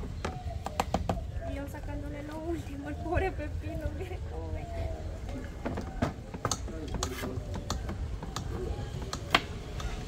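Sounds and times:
knocks on wooden board: 5.6 - 9.5.

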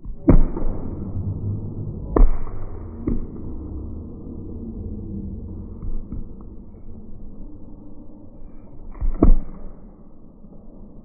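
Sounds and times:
low thud: 0.0 - 7.0
short whoosh: 0.1 - 9.4.

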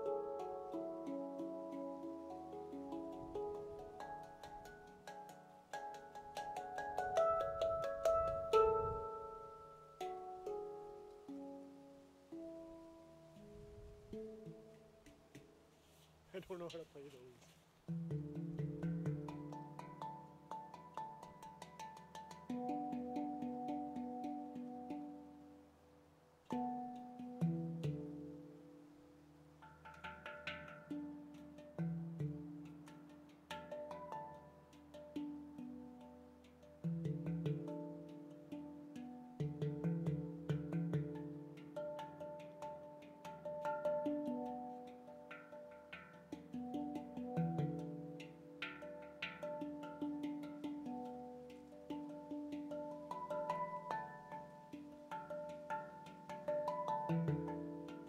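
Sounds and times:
light taps on handpan: 0.0 - 11.6, 12.3 - 25.5, 26.5 - 58.0
handpan ringing notes: 0.0 - 16.0, 17.9 - 58.0.

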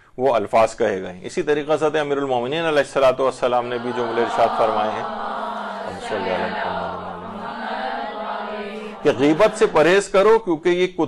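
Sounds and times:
person chanting held notes: 3.1 - 10.3.

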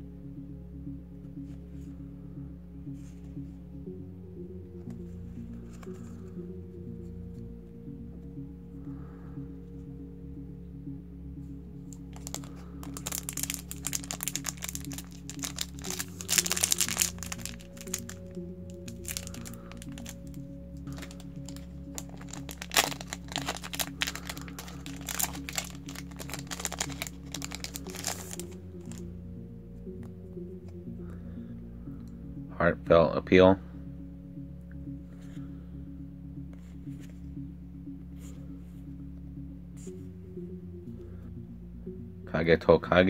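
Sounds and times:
background music: 0.0 - 43.0
foil wrapper crinkling and tearing: 12.2 - 29.0.

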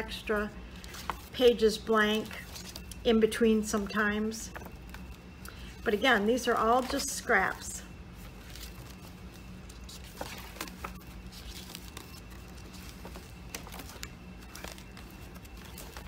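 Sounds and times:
low steady hum: 0.0 - 16.0
pages turning: 0.8 - 1.6, 2.2 - 3.0, 4.5 - 5.8, 8.2 - 16.0.

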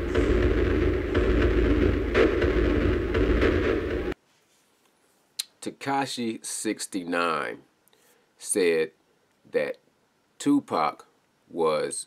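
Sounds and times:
low rumbling drone: 0.0 - 4.2.

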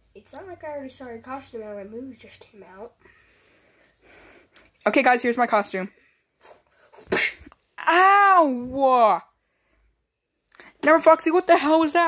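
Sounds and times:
sharp breath-like burst: 3.0 - 4.5.

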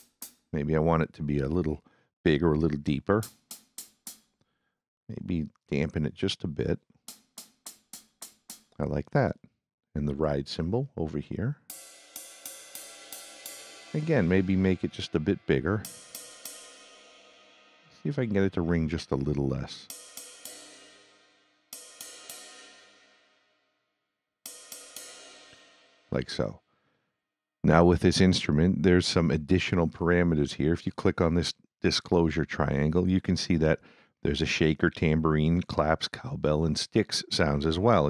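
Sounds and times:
hi-hat strikes: 0.0 - 0.6, 3.2 - 4.4, 7.1 - 8.8, 11.7 - 23.4, 24.5 - 26.4.

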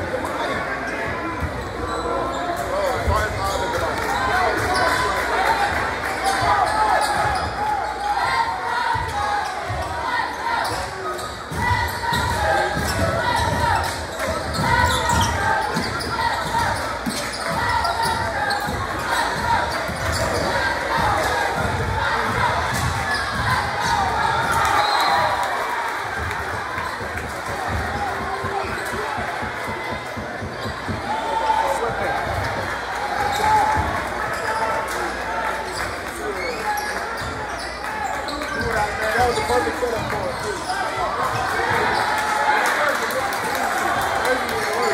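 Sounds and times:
spectators' voices and shouts: 0.0 - 44.9.

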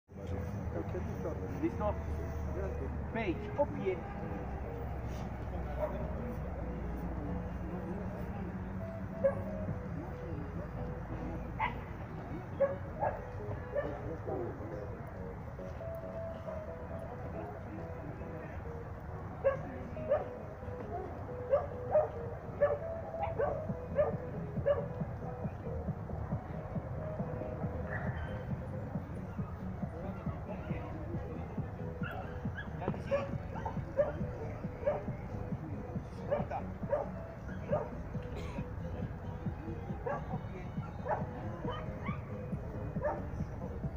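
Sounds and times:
murmur of voices: 0.1 - 43.9
outdoor background noise: 0.1 - 43.9
dog barking: 9.2 - 9.5, 12.6 - 14.0, 19.4 - 20.4, 21.5 - 24.9, 32.0 - 34.2, 34.8 - 35.1, 36.3 - 38.0, 40.0 - 40.3, 41.0 - 42.2, 43.0 - 43.3
dog barking and yipping: 9.2 - 9.5, 21.5 - 24.9, 36.3 - 38.0, 40.0 - 40.3, 43.0 - 43.2.

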